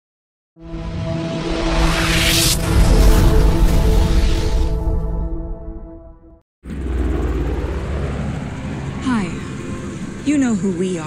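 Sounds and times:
music: 0.6s - 6.4s.

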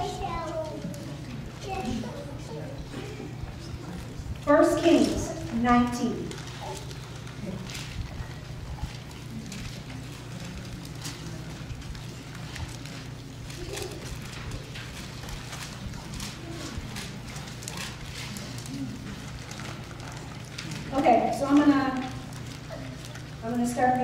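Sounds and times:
faint murmur of voices: 0.0s - 24.0s
steady low hum: 0.0s - 24.0s
pages being leafed through: 3.4s - 24.0s.

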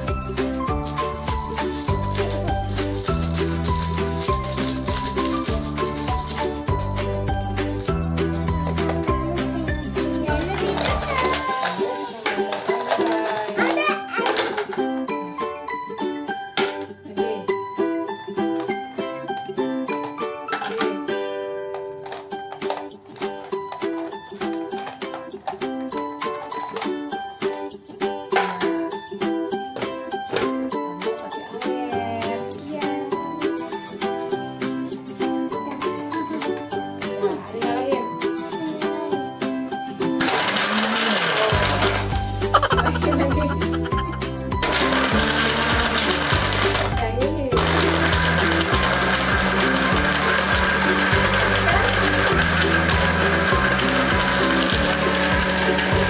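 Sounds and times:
blender whirring: 40.2s - 56.0s.

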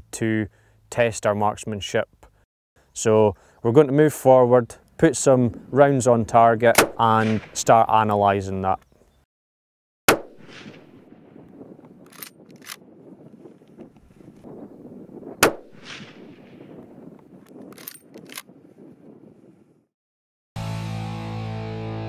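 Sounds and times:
low outdoor background: 0.0s - 9.3s
rifle shots with echo: 6.7s - 7.9s, 10.1s - 13.0s, 15.3s - 17.1s
sharp clicks: 11.8s - 12.8s.

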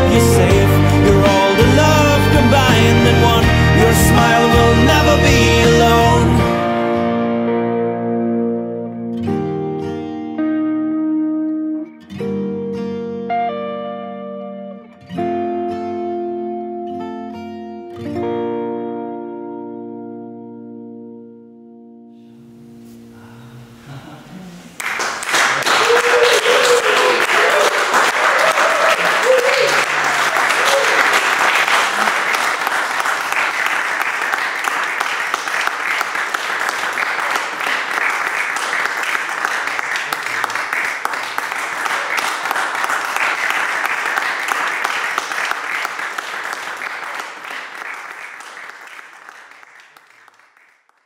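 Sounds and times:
song ending: 0.0s - 8.2s
small group applauding: 24.7s - 51.0s
whoops and cheers: 25.6s - 31.3s.

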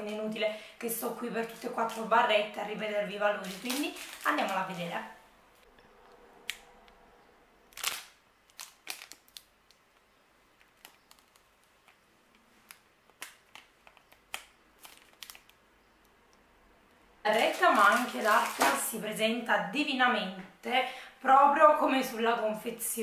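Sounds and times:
plastic wrapper crinkling: 0.9s - 5.2s, 7.7s - 15.7s, 17.3s - 19.2s.

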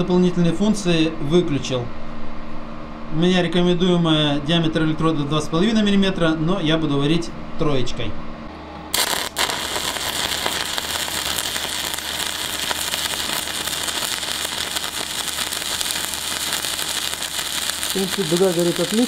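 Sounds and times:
welding arc crackling: 8.9s - 19.0s.

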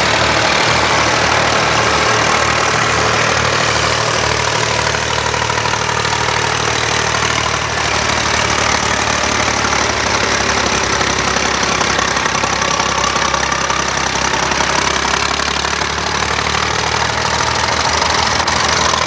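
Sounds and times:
tractor engine running: 0.0s - 19.0s.

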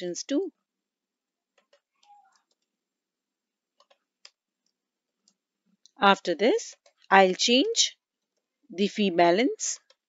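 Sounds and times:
computer keys and mouse clicking: 1.5s - 2.8s, 3.7s - 5.9s.

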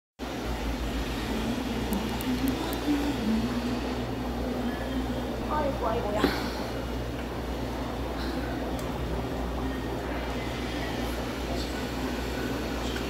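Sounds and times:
aquarium filter bubbling: 0.2s - 13.0s
steady low hum: 0.2s - 13.0s.

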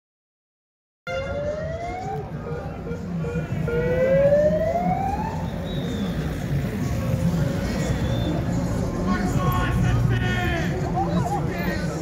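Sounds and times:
siren wailing: 1.1s - 5.6s
street and crowd noise: 1.1s - 12.0s.

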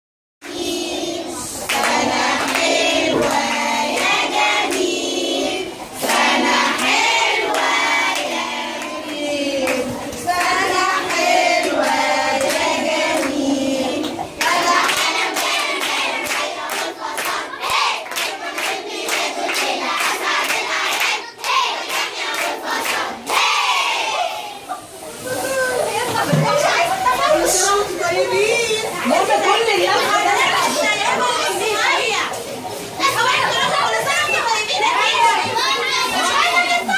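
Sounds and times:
children singing: 0.4s - 24.8s
voices: 0.4s - 36.9s
rhythmic hand clapping: 1.6s - 5.4s, 6.0s - 23.6s.

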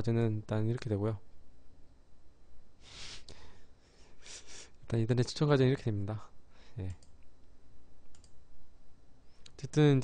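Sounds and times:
computer mouse clicks: 8.1s - 8.4s.

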